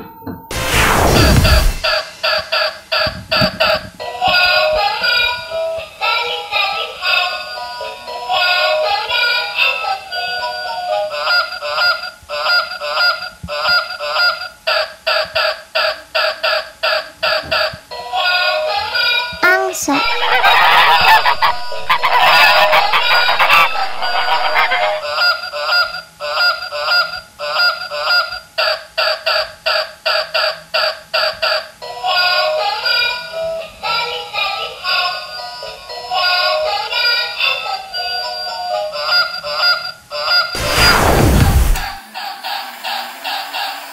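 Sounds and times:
synthetic tune: 0:19.4 - 0:25.1
electronic goose honks: 0:20.1 - 0:25.8.

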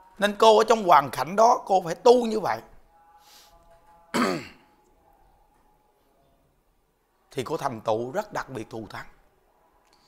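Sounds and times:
man clearing his throat: 0:04.1 - 0:04.7.

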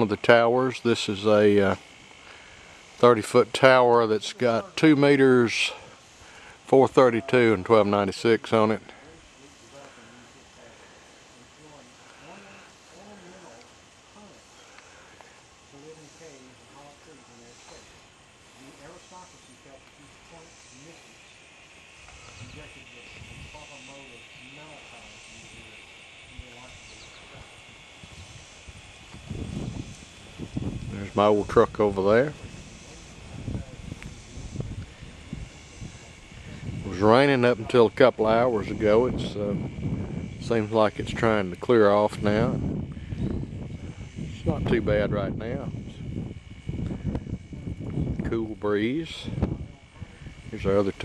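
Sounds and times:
people talking: 0:00.0 - 0:01.8, 0:03.0 - 0:06.0, 0:06.7 - 0:14.5, 0:15.7 - 0:18.0, 0:18.6 - 0:21.2, 0:22.2 - 0:27.6, 0:30.8 - 0:39.7, 0:40.4 - 0:42.7, 0:44.2 - 0:46.0, 0:47.4 - 0:51.0
pulsing chirring: 0:00.0 - 0:51.0
high-pitched drone: 0:15.7 - 0:51.0
wind buffeting microphone: 0:26.4 - 0:51.0.

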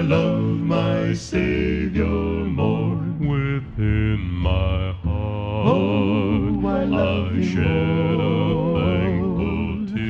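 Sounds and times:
musical backing: 0:00.0 - 0:10.0.

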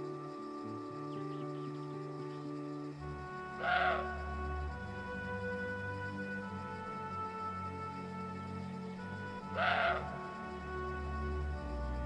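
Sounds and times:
music with sustained notes: 0:00.0 - 0:12.0
deer barking: 0:03.6 - 0:04.2, 0:09.5 - 0:10.2.

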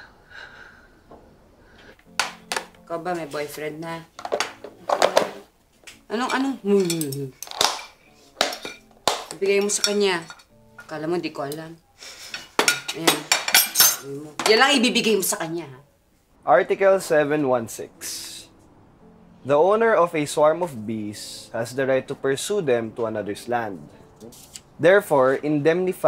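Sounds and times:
kitchenware knocking on table: 0:04.2 - 0:05.4
tableware clinking: 0:06.1 - 0:11.6, 0:12.3 - 0:14.7.

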